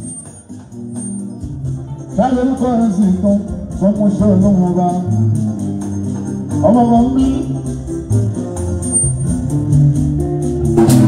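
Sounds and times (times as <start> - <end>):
bass guitar: 0.0 - 11.0
steady percussion: 0.0 - 11.0
electric guitar: 1.4 - 11.0.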